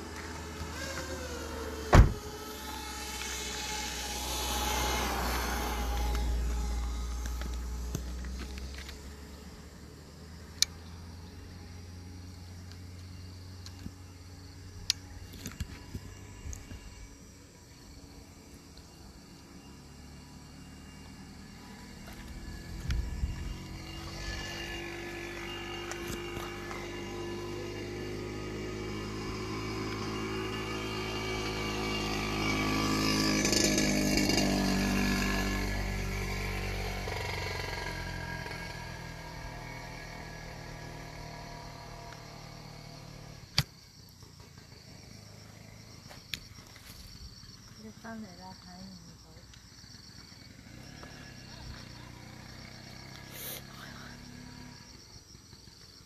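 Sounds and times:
vehicle engine passing by: 0:00.0 - 0:17.2, 0:18.4 - 0:43.5, 0:49.8 - 0:55.8.

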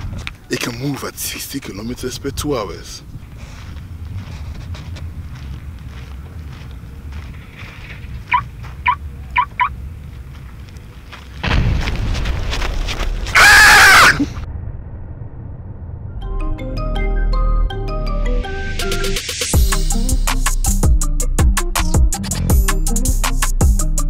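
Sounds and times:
faint low rumble: 0:03.0 - 0:13.4, 0:14.2 - 0:17.8
explosion blast: 0:11.4 - 0:16.8.

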